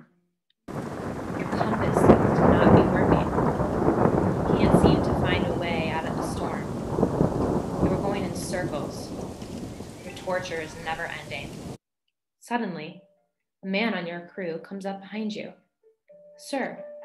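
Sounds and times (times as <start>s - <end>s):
heavy rain: 0.7s - 11.8s
thunder: 0.7s - 11.8s.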